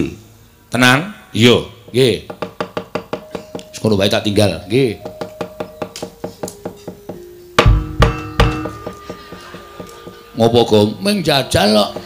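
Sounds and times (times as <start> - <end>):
rapid wooden knocking: 1.9 - 3.6, 11.7 - 12.0
held ringing tone: 2.6 - 12.0
metallophone tones ringing: 2.6 - 12.0.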